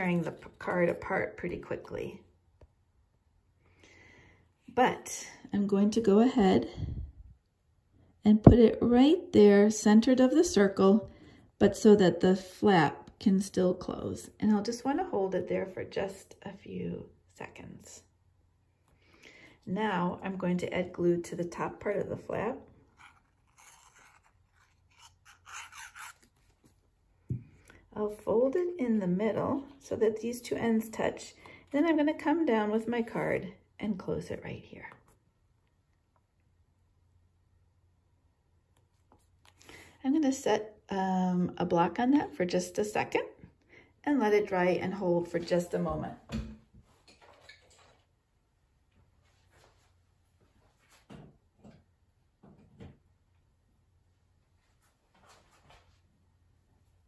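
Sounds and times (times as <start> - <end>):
glue bottle tip scratching card: 23.0 - 26.5.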